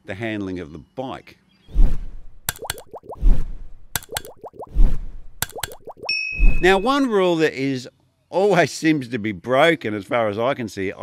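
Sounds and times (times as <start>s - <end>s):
sharp clicks: 2.5s - 3.0s, 4.0s - 4.6s, 5.4s - 6.0s.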